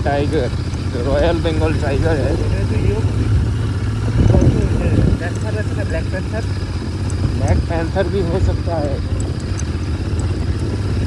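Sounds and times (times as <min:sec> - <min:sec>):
motorcycle engine riding: 0:00.0 - 0:11.0.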